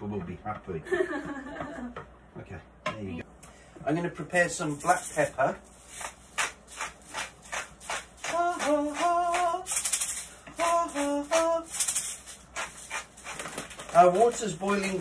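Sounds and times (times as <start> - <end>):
pepper mill grinding: 4.8 - 15.0.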